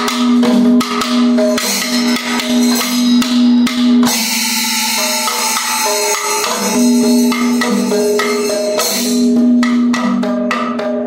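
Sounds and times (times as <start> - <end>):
hand cymbals: 0.0 - 11.0.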